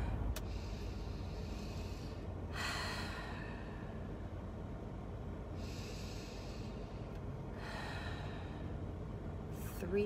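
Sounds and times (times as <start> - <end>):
woman breathing deeply: 0.0 - 4.5, 5.4 - 9.2.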